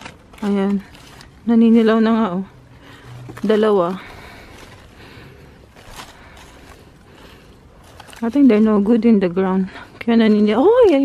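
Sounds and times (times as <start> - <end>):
rustling leaves and vines: 0.0 - 11.0.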